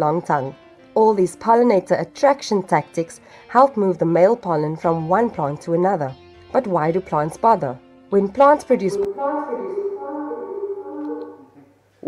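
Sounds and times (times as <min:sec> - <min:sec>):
held chord of steady tones: 0:08.4 - 0:11.6.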